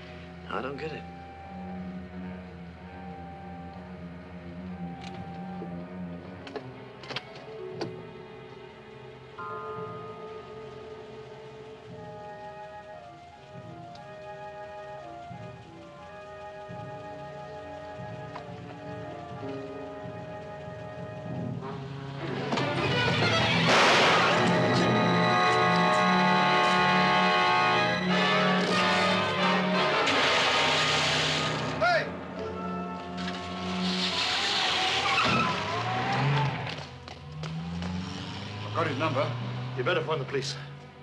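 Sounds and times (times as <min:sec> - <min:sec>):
film score music: 0:00.0 - 0:41.0
car engine pulling away: 0:01.2 - 0:41.0
tyre squeal: 0:33.3 - 0:36.6.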